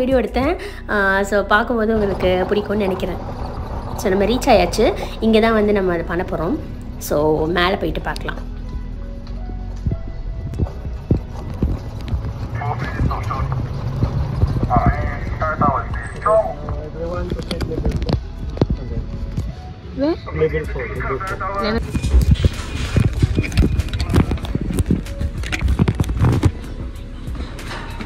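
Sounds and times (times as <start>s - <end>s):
buggy rolling low rumble: 1.2s - 8.6s, 9.8s - 19.8s, 20.5s - 28.0s
knocks and rattles over bumps: 1.8s - 5.2s, 9.8s - 16.0s.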